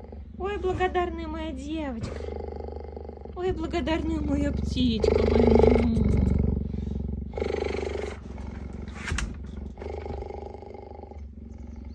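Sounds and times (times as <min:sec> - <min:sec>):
cheetah purring: 0:00.0 - 0:11.9.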